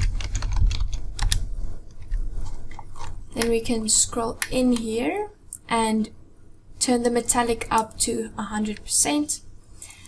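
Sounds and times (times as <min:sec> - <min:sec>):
computer keyboard keystrokes: 0:00.0 - 0:01.4.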